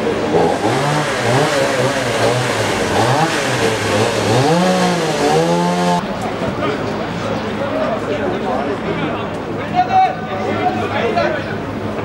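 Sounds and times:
small petrol engine revving: 0.0 - 6.0.

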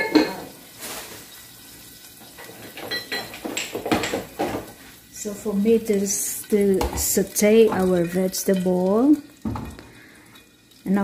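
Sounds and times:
metal cookware clanking: 0.0 - 0.6, 2.4 - 4.7.

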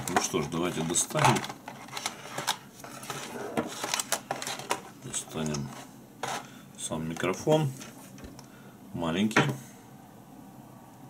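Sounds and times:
plastic packaging rustling: 0.0 - 6.5.

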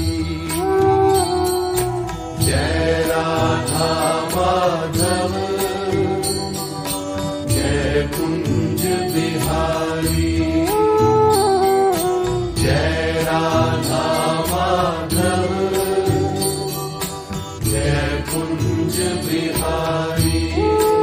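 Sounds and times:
devotional singing with sliding notes: 0.0 - 21.0
light percussion beat: 0.0 - 21.0.

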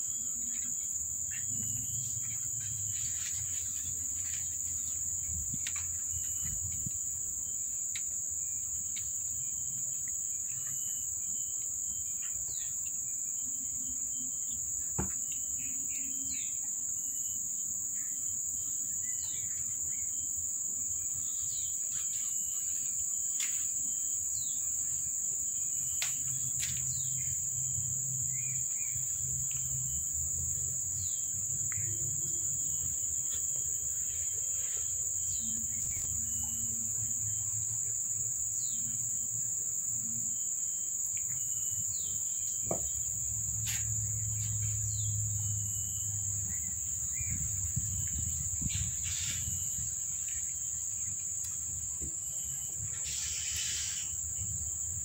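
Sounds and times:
insect chorus droning: 0.0 - 55.0.

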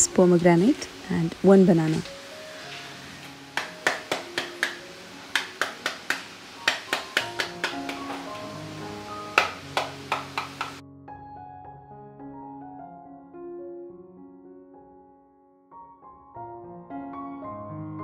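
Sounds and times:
soft piano music: 0.0 - 18.0
pomegranate tapping: 3.6 - 8.3.

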